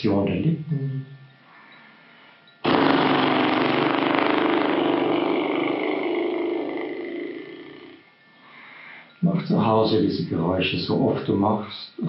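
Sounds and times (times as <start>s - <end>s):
man blowing lip trill: 2.6s - 8.1s.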